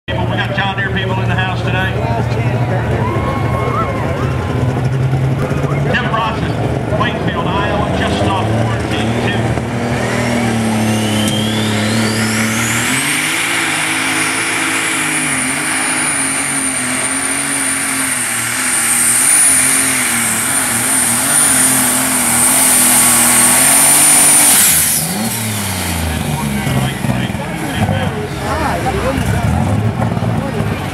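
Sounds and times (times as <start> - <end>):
tractor engine revving: 0.0 - 30.9
turbocharger whine: 0.2 - 30.9.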